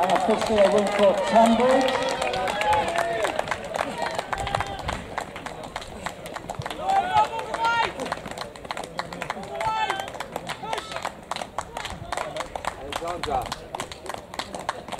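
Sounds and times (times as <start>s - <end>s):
runners' footfalls on track: 0.0s - 14.9s.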